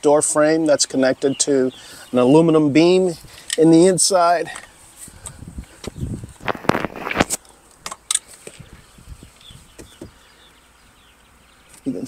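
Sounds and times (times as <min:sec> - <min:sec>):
handling clicks and knocks: 0:04.5 - 0:08.6.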